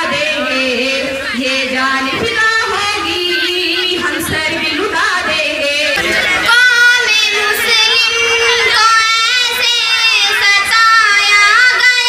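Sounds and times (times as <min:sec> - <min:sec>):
girl singing into a microphone: 0:00.0 - 0:12.0.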